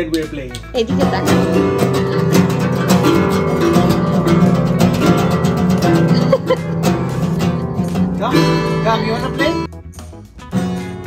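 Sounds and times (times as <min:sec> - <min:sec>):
acoustic guitars strummed: 0:00.8 - 0:11.0.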